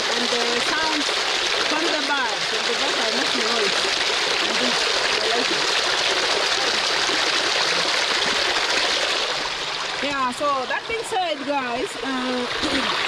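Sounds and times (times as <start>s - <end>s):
small waterfall rushing: 0.0s - 13.0s.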